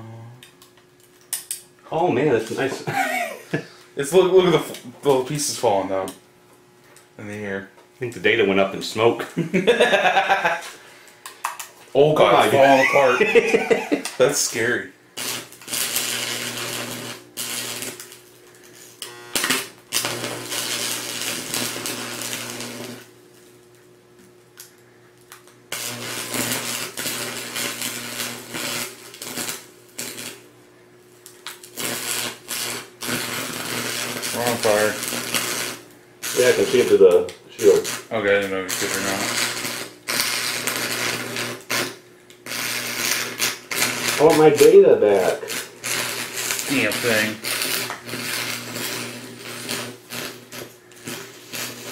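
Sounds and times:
steady welder buzz: 0:00.0 - 0:51.9
welding arc crackling: 0:00.4 - 0:06.2, 0:08.0 - 0:51.9.

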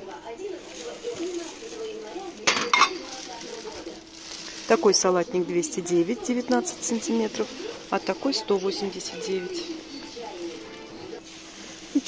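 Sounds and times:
glass bowl clinking: 0:02.4 - 0:03.2.

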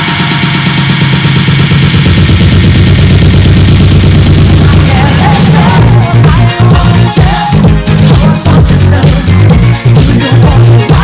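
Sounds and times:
bass-heavy electronic dance music: 0:00.0 - 0:11.0.

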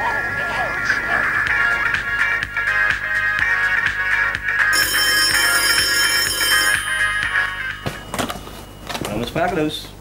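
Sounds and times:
telephone ringing: 0:04.6 - 0:09.5.

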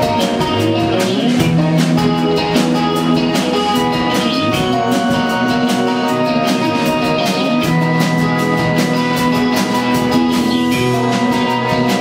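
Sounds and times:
drum kit steady beat: 0:00.0 - 0:12.0
electric guitars holding chords: 0:00.0 - 0:12.0.

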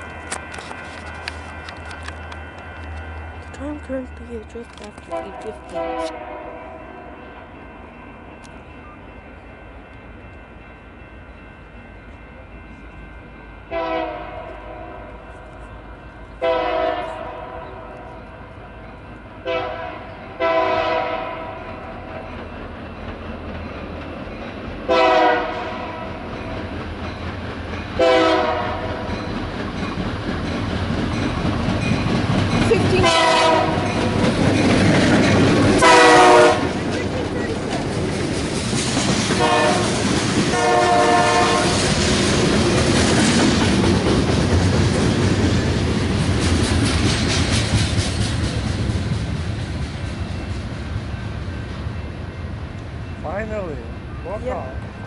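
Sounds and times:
train wheels rumbling and clattering: 0:00.0 - 0:55.0
locomotive horn blasts: 0:05.1 - 0:06.8, 0:13.7 - 0:15.1, 0:16.4 - 0:18.1, 0:19.4 - 0:21.6, 0:24.9 - 0:26.1, 0:28.0 - 0:29.0, 0:32.9 - 0:33.9, 0:35.8 - 0:36.8, 0:39.4 - 0:41.8.

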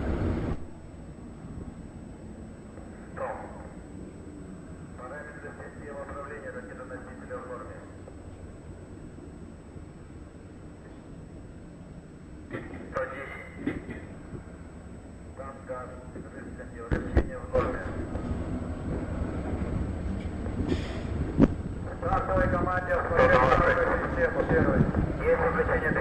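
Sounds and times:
rocket engines rumbling: 0:00.0 - 0:26.0
faint voices: 0:21.8 - 0:26.0.

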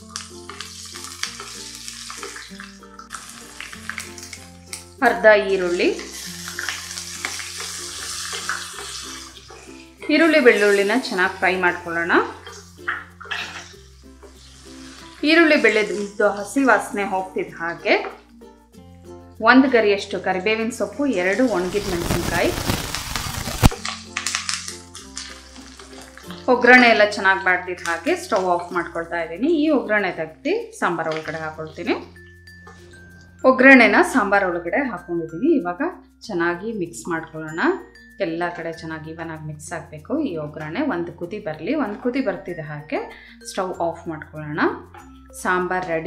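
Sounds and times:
garlic sizzling in oil: 0:00.0 - 0:18.7, 0:19.6 - 0:33.2
background music with held notes: 0:00.0 - 0:46.0
metal spoon scraping pan: 0:05.7 - 0:11.5, 0:12.4 - 0:16.0.

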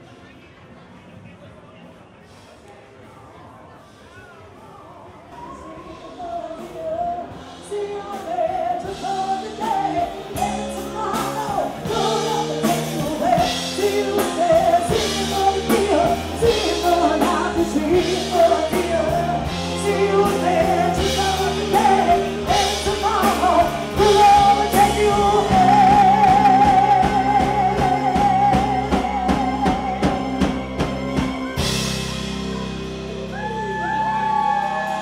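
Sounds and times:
person singing: 0:05.4 - 0:31.7
live rock band playing: 0:06.6 - 0:35.0.

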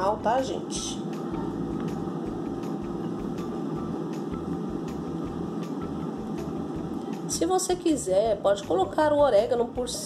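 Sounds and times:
machine hum: 0:00.0 - 0:10.0.

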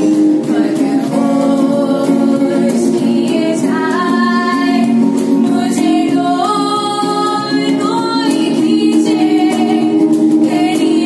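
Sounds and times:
electric guitar: 0:00.0 - 0:11.0
girl and boy singing together: 0:00.0 - 0:11.0.

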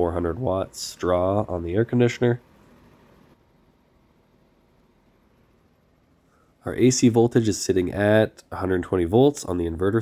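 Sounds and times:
faint low background rumble: 0:00.0 - 0:10.0.

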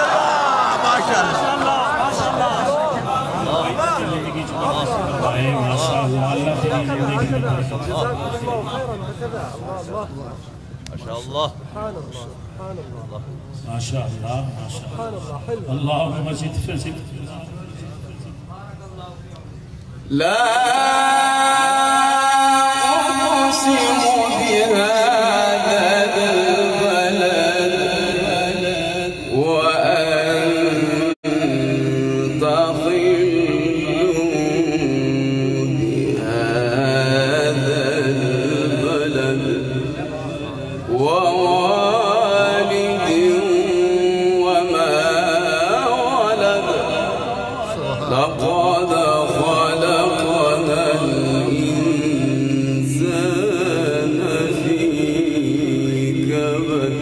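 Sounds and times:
man chanting melodically: 0:00.0 - 0:19.4, 0:20.0 - 0:57.0.

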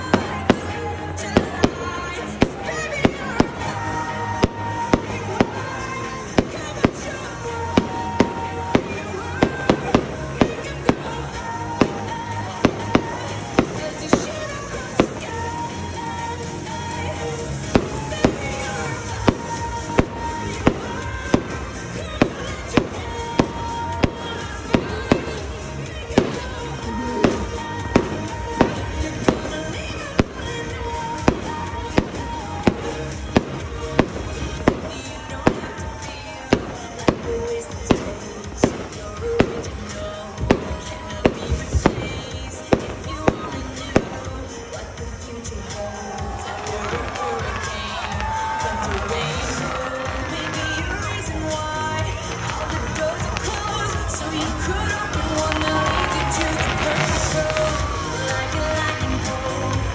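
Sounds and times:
fireworks bursting: 0:00.0 - 0:59.9
music: 0:00.0 - 0:59.9.

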